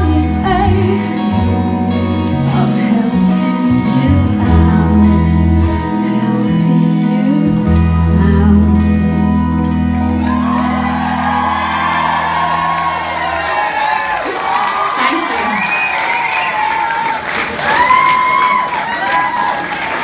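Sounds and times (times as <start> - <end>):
electric guitar and bass chord: 0.0 - 13.2
audience cheering and whooping: 9.8 - 20.0
high piercing whistle: 13.8 - 16.6.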